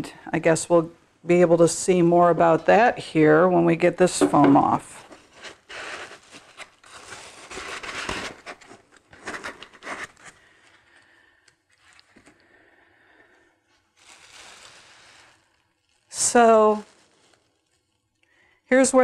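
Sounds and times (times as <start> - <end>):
foam packing rustling and scraping: 4.8 - 11.1, 13.7 - 18.2.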